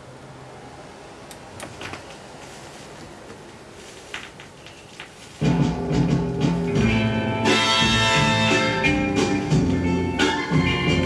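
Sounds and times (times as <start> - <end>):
soul band music: 5.4 - 11.0.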